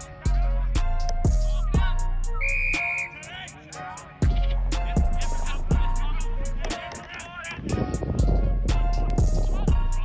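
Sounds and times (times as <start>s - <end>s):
backing music with bass beat: 0.0s - 10.0s
short whistle blast: 2.3s - 3.2s.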